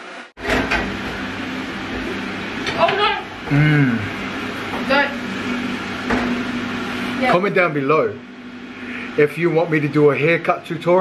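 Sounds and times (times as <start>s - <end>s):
small motor humming: 2.7s - 4.2s.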